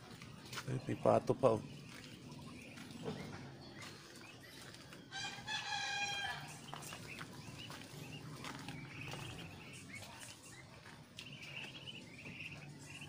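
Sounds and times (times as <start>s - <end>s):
rooster crowing: 5.1s - 6.6s.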